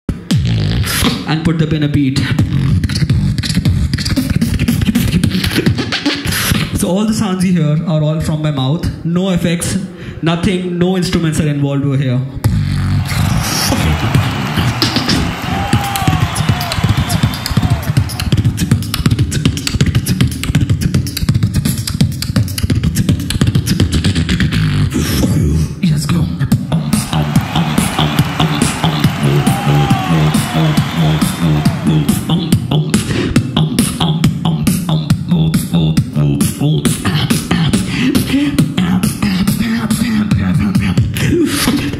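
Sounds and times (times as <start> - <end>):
beatboxing: 0.1 - 10.3, 12.3 - 41.9.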